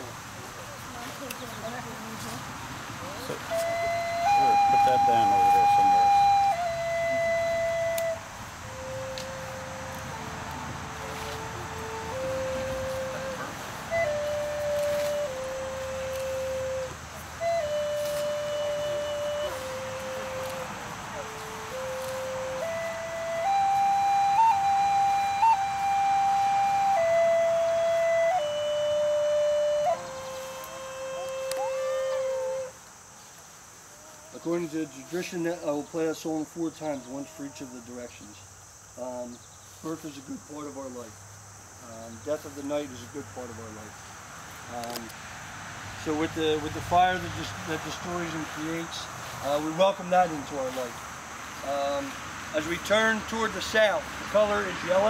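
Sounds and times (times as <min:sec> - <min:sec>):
flute playing slow melody: 0:03.0 - 0:32.8, 0:36.7 - 0:38.1.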